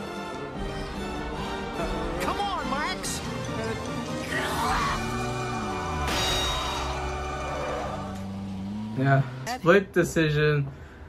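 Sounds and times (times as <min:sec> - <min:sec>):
film soundtrack sustained tones: 0:00.0 - 0:10.3.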